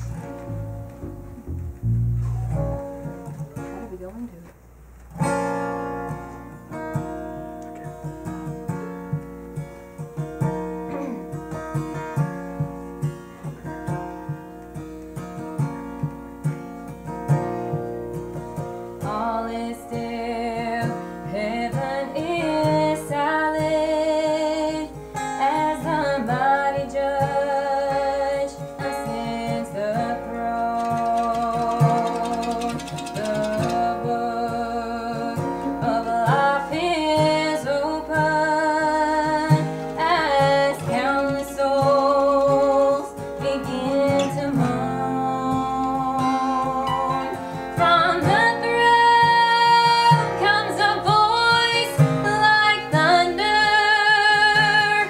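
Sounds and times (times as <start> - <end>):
acoustic guitars strumming: 0.0 - 55.0
woman singing: 19.0 - 55.0.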